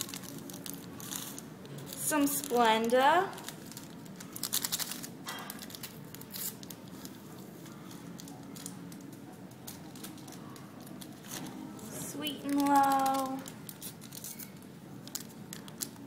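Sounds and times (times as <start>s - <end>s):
paper packet crinkling: 0.0s - 16.0s
paper packet tearing: 0.0s - 16.0s.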